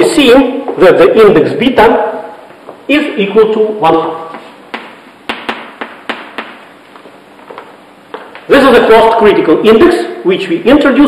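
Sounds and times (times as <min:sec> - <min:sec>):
chalk tapping on a blackboard: 0:04.3 - 0:06.7.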